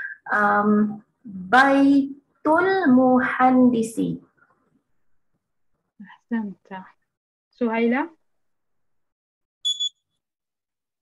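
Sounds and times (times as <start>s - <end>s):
high-pitched double beep: 9.6s - 10.0s.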